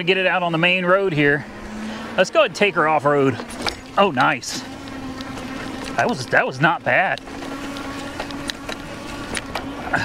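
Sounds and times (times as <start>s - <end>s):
electric bike hum: 0.0s - 10.0s
clicks and rattles from bumps: 3.3s - 9.7s.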